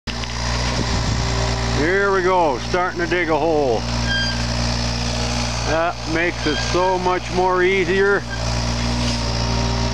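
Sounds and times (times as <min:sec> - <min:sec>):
diesel engine running: 0:00.1 - 0:09.9.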